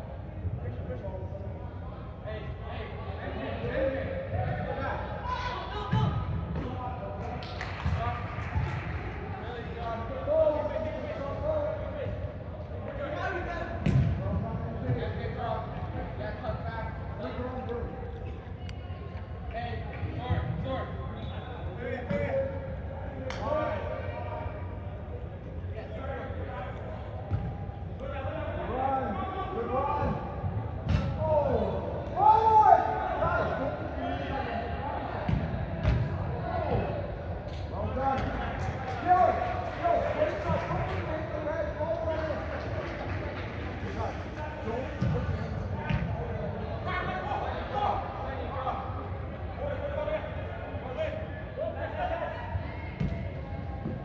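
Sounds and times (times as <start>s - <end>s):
loud shout: 32.2s - 34.3s.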